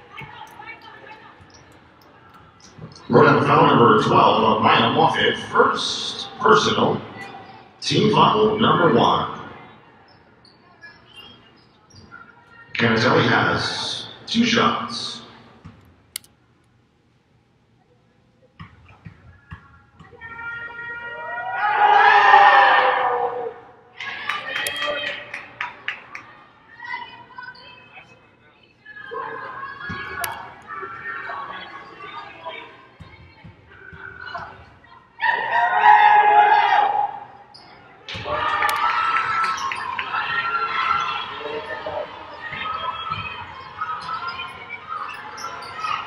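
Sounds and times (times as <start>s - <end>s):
people shouting and cheering: 20.1s - 27.6s, 29.0s - 46.0s.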